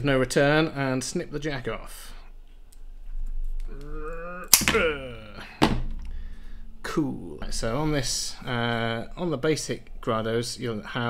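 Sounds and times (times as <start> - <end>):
man humming: 3.6 - 5.6
side cutters snipping cable: 4.5 - 4.9.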